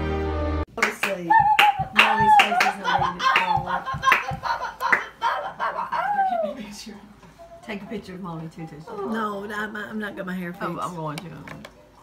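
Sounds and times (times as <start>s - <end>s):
hand clapping: 0.8s - 5.2s.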